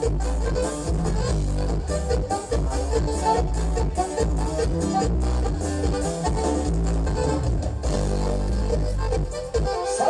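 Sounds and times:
live band dance music: 0.0s - 10.0s.

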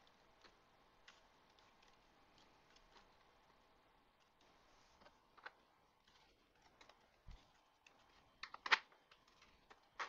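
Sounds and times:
plastic parts clicking and knocking: 0.0s - 10.0s.

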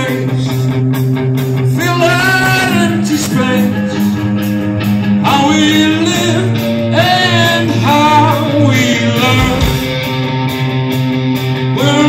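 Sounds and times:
rock band playing live: 0.0s - 12.0s
person singing: 5.2s - 10.0s.

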